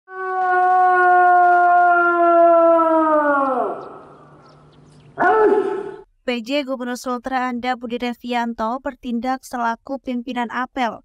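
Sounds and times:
person shouting parade commands: 5.2 - 6.0.

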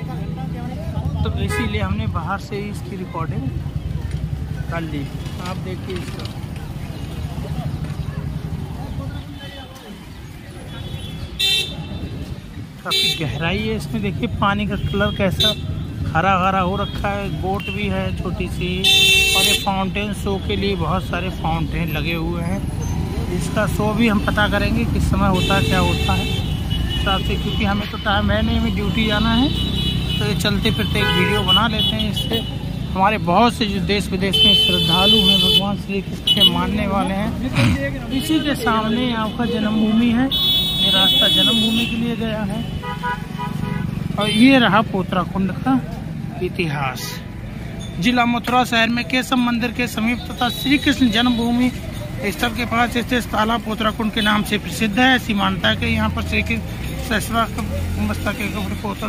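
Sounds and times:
street traffic: 0.0 - 59.0
voices talking: 0.0 - 59.0
vehicle horn: 1.4 - 1.9, 18.8 - 19.8, 29.4 - 32.5, 34.3 - 36.7, 38.9 - 42.0, 42.6 - 44.6.

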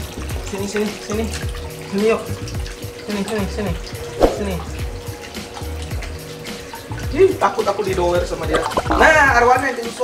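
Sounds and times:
water splashing in pond: 4.0 - 5.1, 8.4 - 9.3.

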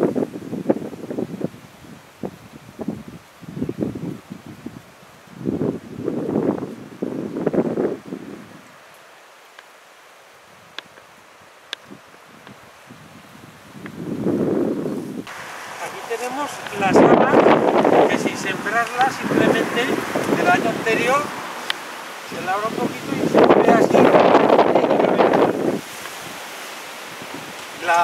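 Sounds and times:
wind on microphone: 0.0 - 8.8, 10.5 - 28.0
faint clicks: 21.6 - 21.8.

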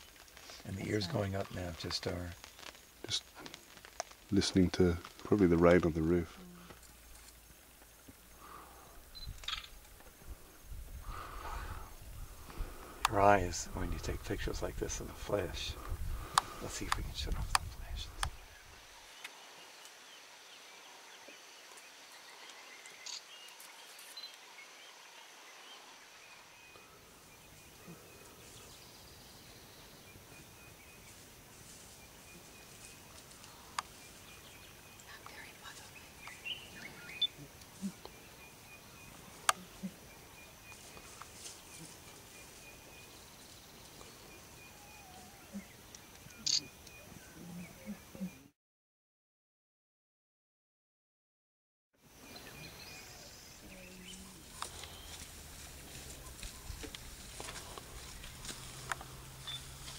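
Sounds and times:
sharp clicks: 45.9 - 47.0.

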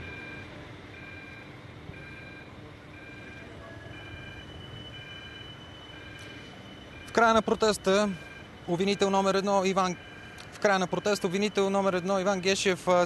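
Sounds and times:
electronic beeper: 0.0 - 13.0
street noise: 0.0 - 13.0.

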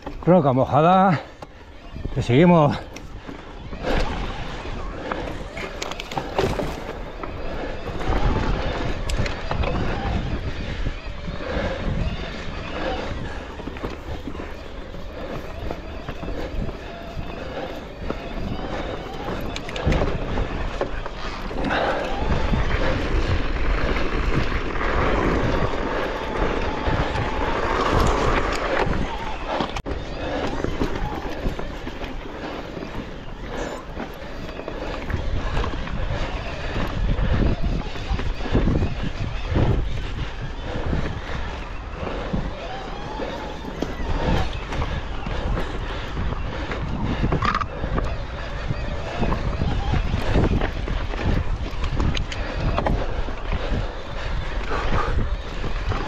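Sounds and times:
bike rattling: 0.0 - 56.0
wind rumble on microphone: 0.0 - 56.0.

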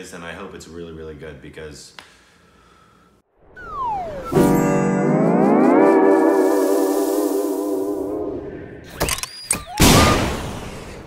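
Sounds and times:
whistling pitch slides: 3.4 - 8.8
cartoon bomb explosion: 9.8 - 11.0.

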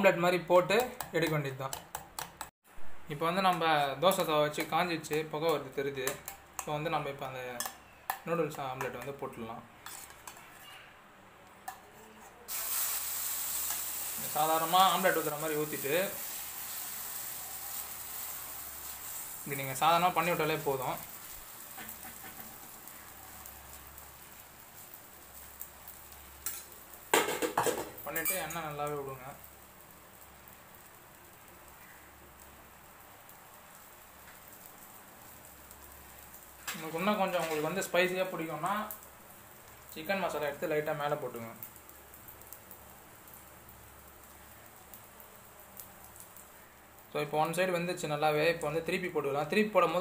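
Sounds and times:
spatula tapping a pan: 0.8 - 2.5
omelette sizzling in a pan: 3.2 - 10.7, 11.7 - 50.0.

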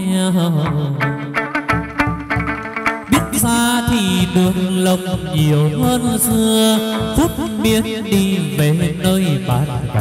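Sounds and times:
plucked lute: 0.0 - 9.3.

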